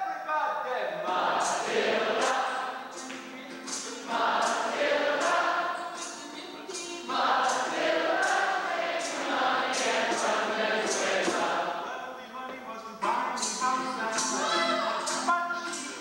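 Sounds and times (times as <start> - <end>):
male voices singing in harmony: 1.0 - 16.0.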